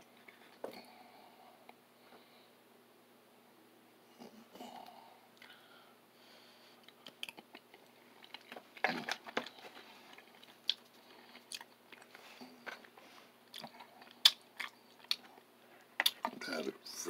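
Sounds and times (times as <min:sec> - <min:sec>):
person chewing food: 0:06.7 - 0:16.4.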